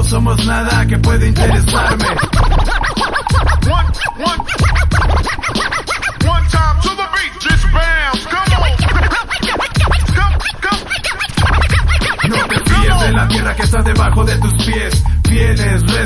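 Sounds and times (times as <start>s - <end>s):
hip-hop beat kick drum: 0.0s - 16.0s
turntable scratching: 0.0s - 16.0s.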